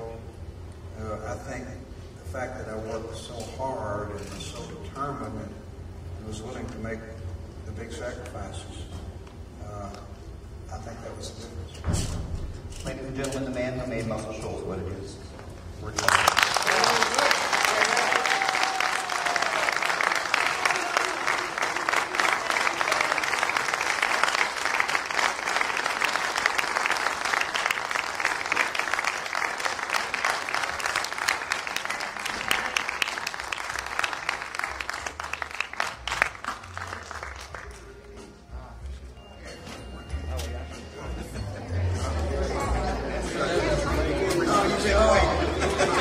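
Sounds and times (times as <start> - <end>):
audience applauding: 16.0 - 38.2.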